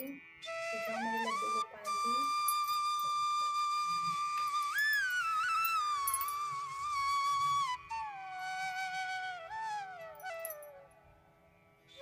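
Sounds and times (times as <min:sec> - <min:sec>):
flute melody with sliding notes: 0:00.0 - 0:11.2.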